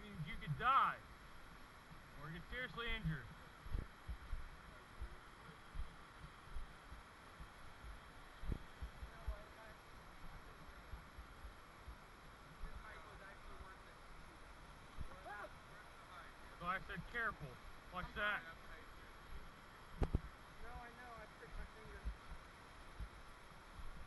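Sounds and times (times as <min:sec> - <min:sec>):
creek rushing: 0:00.0 - 0:24.0.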